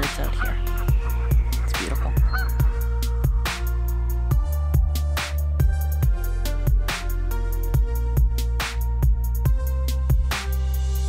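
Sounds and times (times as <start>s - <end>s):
electronic music with steady beat: 0.0s - 11.0s.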